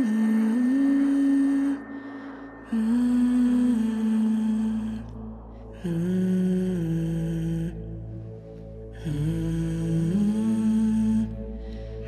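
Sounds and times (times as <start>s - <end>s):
person humming a slow melody: 0.0s - 12.0s.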